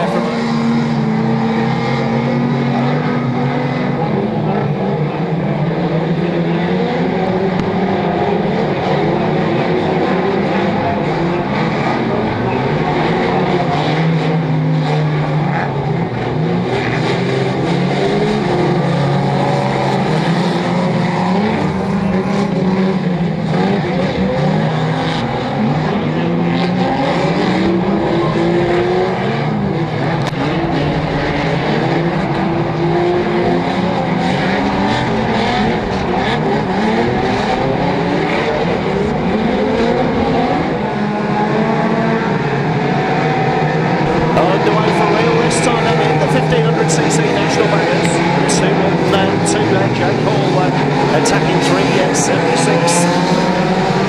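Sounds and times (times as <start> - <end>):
car engines revving: 0.0 - 54.0.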